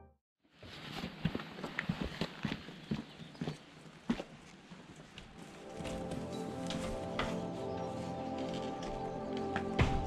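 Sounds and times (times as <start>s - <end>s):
footsteps on gritty concrete: 0.6s - 10.0s.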